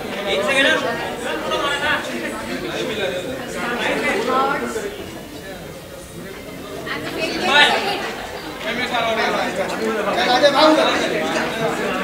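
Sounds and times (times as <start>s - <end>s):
crowd chatter in a large hall: 0.0s - 12.0s.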